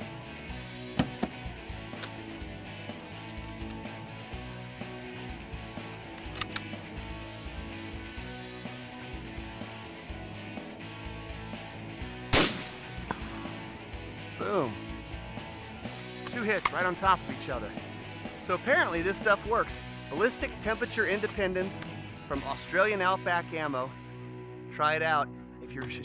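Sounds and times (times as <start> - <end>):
background music: 0.0 - 26.0
sharp clicks: 3.2 - 3.8, 5.8 - 6.8
rifle shot: 12.3 - 13.7.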